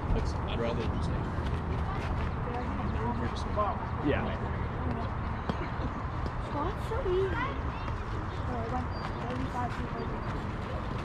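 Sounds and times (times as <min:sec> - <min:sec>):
faint voices calling and chatting: 0:00.0 - 0:11.0.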